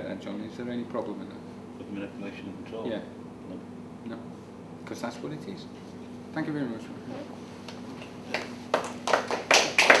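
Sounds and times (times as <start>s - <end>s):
hand clapping: 7.7s - 10.0s.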